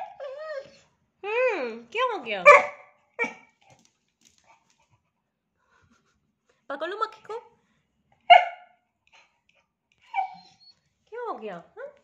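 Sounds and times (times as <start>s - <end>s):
dog crying: 0.0s - 0.8s, 10.1s - 10.7s.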